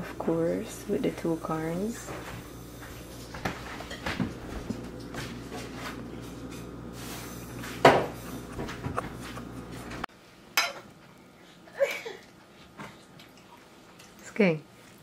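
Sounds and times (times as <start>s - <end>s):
steady background hum: 0.0s - 15.0s
plates and fork clinking: 3.7s - 4.3s.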